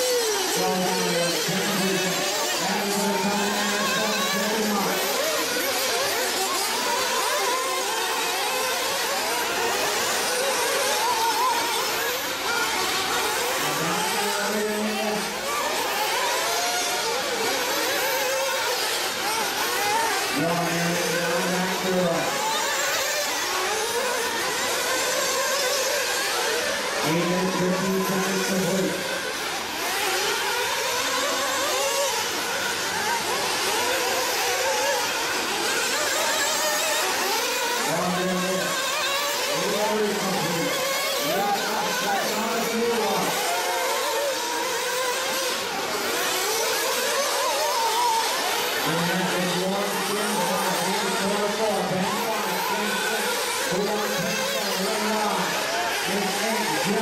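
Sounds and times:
rc car engines whining: 0.0 - 57.0.

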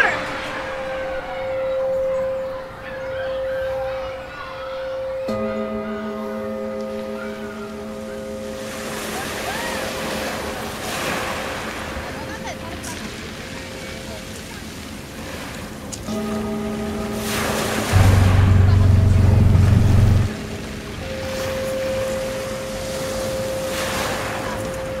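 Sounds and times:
steady high tone: 0.0 - 4.6, 16.1 - 23.7
noisy wash: 8.2 - 25.0
low buzzing tone: 16.1 - 23.7.

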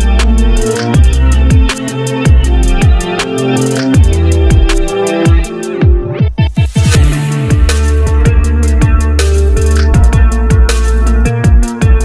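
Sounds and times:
drum and bass electronic music: 0.0 - 12.0.

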